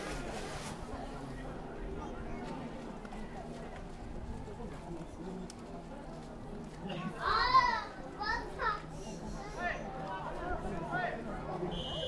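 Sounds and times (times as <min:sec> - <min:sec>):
faint open-air background noise: 0:00.0 - 0:12.0.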